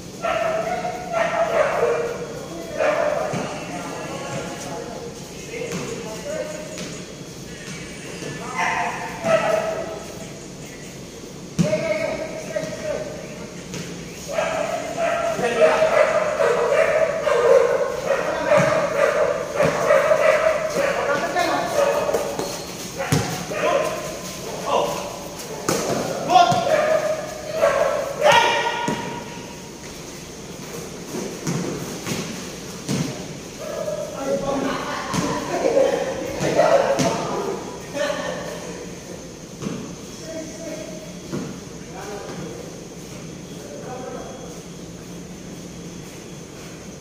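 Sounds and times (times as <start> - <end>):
ball bouncing on concrete: 22.1 - 23.4
players shouting: 23.0 - 29.8.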